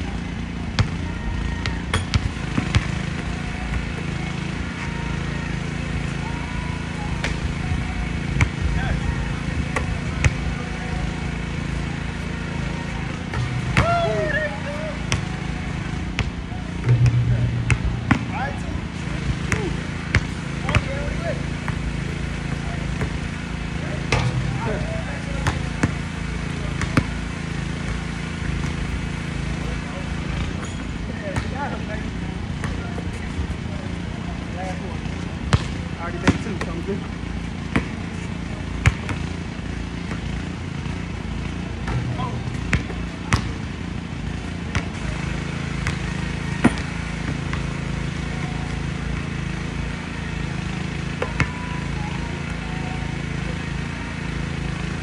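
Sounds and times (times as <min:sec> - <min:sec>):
low background hum: 0:00.0 - 0:55.0
basketball bouncing on hard court: 0:00.8 - 0:01.0, 0:01.6 - 0:03.2, 0:16.2 - 0:18.7, 0:19.4 - 0:21.0, 0:25.4 - 0:26.0, 0:26.8 - 0:28.9, 0:37.7 - 0:38.0, 0:38.8 - 0:39.3, 0:41.8 - 0:43.6, 0:44.7 - 0:44.9, 0:45.8 - 0:47.7.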